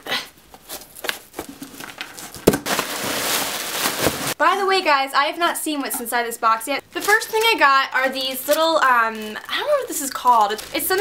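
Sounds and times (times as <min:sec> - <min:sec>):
plastic wrapping crinkling: 0:00.7 - 0:04.4, 0:06.9 - 0:11.0.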